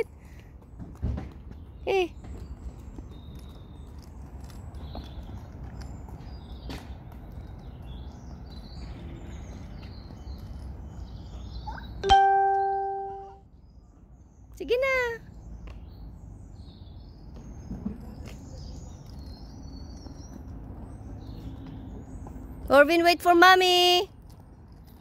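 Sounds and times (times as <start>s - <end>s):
bell-like chime: 12.0s - 13.4s.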